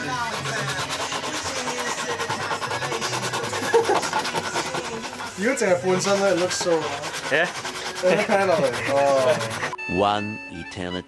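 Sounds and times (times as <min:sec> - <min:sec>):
sandpaper rubbing back and forth: 0:00.0 - 0:09.8.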